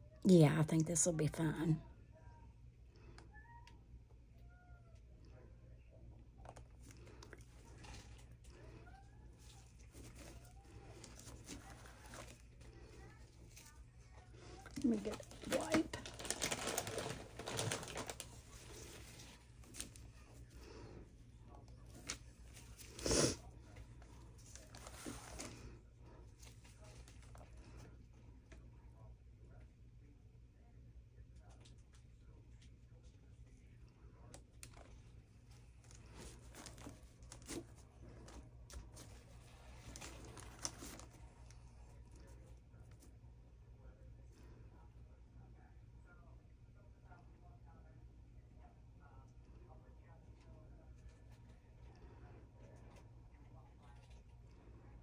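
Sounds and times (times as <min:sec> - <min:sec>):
gloved hands crinkling and rustling: 0:06.4 - 0:20.8, 0:34.4 - 0:43.1.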